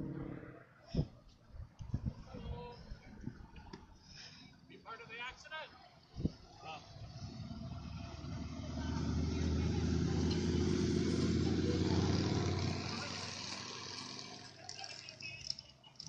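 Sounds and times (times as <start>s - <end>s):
highway traffic passing: 0.0s - 16.0s.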